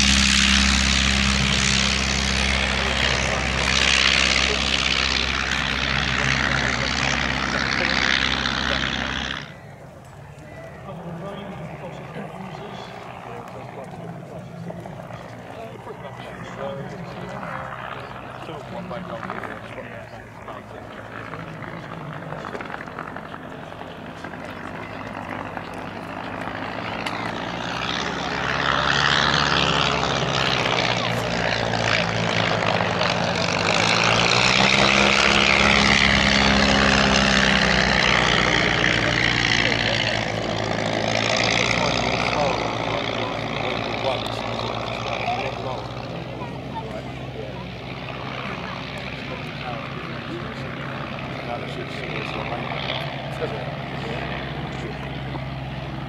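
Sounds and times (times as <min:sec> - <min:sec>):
biplane piston engines flying past: 0:00.0 - 0:56.0.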